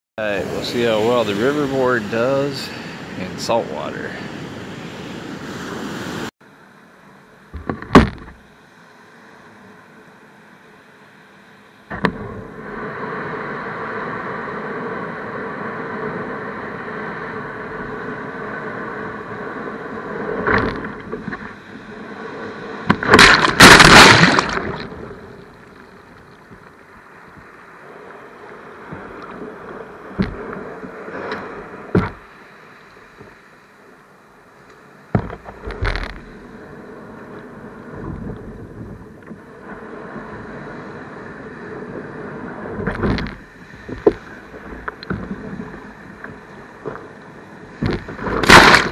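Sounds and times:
ocean surf washing against board: 0.2 - 6.3, 11.9 - 34.1, 34.8 - 48.9
wave breaking over bow: 0.2 - 6.3, 11.9 - 26.9, 47.7 - 48.9
short knocks and splashes: 22.9 - 24.9, 47.8 - 48.9.

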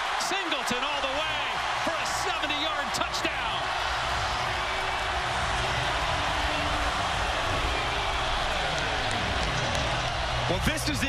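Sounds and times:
stadium crowd cheering: 0.0 - 11.0.

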